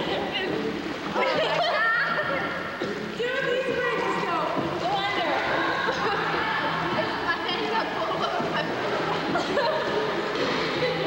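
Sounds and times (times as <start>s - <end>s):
young people squealing and laughing: 1.2s - 2.6s, 5.4s - 7.2s
people talking: 3.2s - 9.7s.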